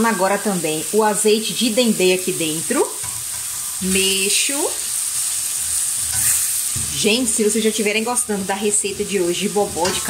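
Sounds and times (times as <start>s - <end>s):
vegetables sizzling in oil: 0.0s - 10.0s
spatula scraping pan: 3.0s - 4.1s, 5.7s - 7.4s, 8.2s - 10.0s.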